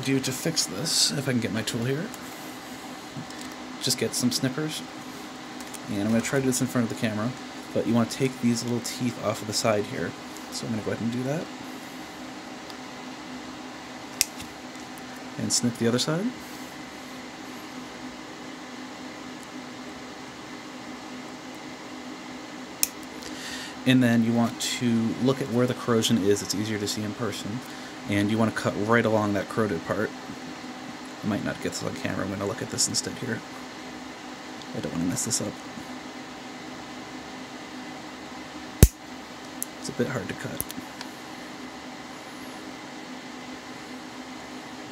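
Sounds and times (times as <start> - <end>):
room hum and hiss: 0.0 - 44.9.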